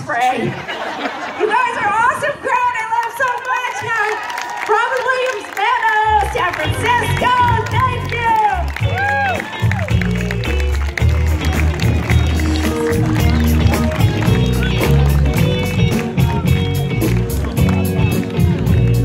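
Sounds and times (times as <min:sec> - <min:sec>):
bass line: 0:06.1 - 0:19.0
held keyboard chords: 0:06.2 - 0:19.0
live band playing pop: 0:06.2 - 0:19.0
steady drum beat: 0:06.2 - 0:19.0.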